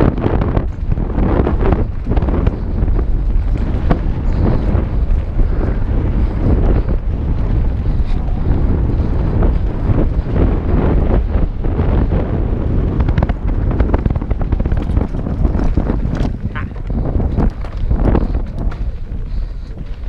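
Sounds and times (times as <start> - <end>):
tyres rolling on dirt: 0.0 - 20.0
wind over microphone: 0.0 - 20.0
bike knocks and rattles: 12.8 - 20.0.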